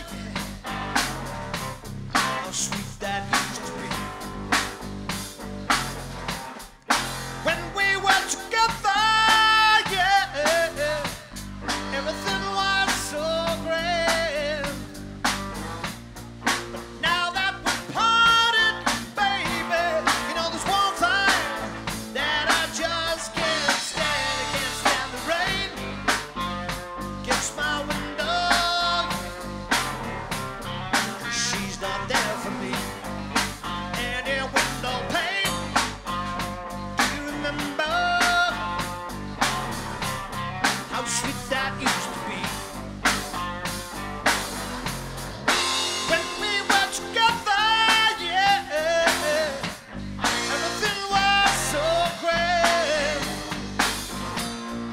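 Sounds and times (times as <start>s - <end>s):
bending lead guitar line: 0.0s - 54.9s
live rock band playing: 0.0s - 54.9s.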